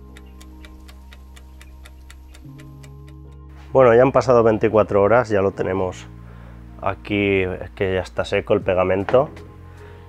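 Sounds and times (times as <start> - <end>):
clock ticking: 0.0 - 3.4
low background music: 0.0 - 10.0.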